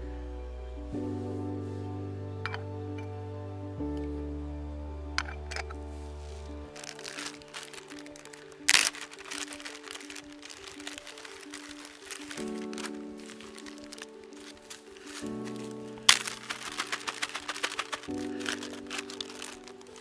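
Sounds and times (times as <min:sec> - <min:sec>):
background music of held chords: 0:00.0 - 0:20.0
plastic bag crinkling: 0:06.7 - 0:20.0
foil packet crinkling: 0:06.8 - 0:20.0.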